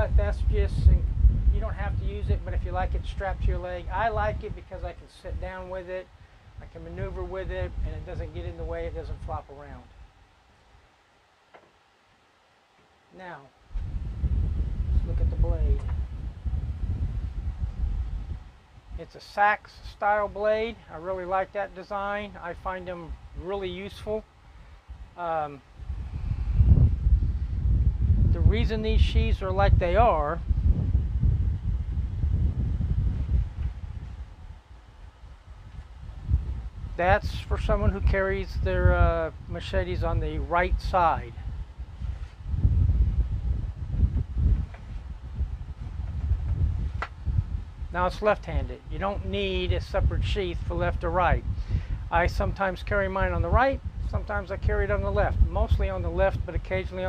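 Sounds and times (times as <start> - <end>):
wind rumble on microphone: 0.0 - 10.8, 13.6 - 57.0.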